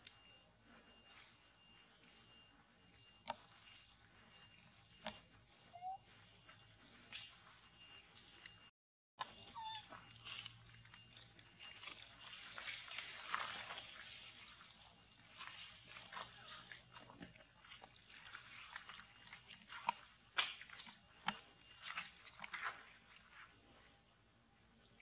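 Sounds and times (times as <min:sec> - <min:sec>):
wavering squeak: 0:05.6 - 0:06.1, 0:09.3 - 0:10.2.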